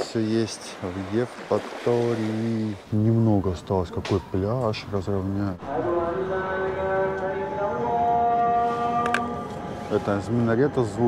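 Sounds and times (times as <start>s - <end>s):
man singing call to prayer: 5.6s - 11.0s.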